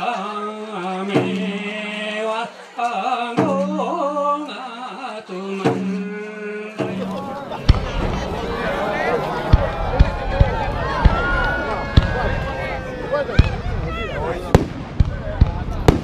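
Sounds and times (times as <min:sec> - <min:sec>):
outdoor crowd chatter: 0:00.0 - 0:16.0
fireworks cracking: 0:07.0 - 0:16.0.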